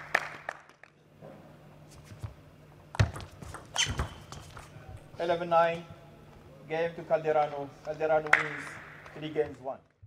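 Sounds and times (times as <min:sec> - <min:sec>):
applause: 0:00.0 - 0:01.0.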